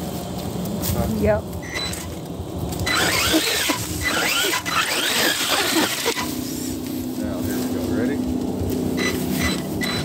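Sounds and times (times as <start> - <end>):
electric motor whining: 1.6 - 6.9, 8.5 - 10.0.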